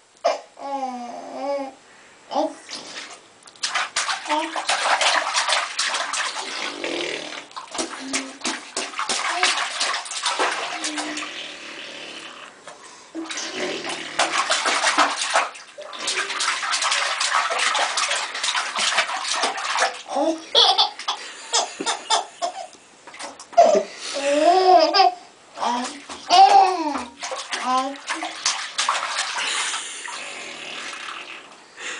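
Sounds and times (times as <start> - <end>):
bath water splashing: 2.7 - 23.9, 24.6 - 31.6
baby laughing and squealing: 20.1 - 22.7, 23.6 - 27.0.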